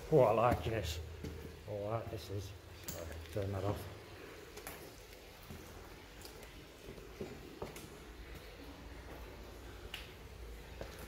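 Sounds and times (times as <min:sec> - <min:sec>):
faint handling clicks and rustles: 0:00.0 - 0:11.0.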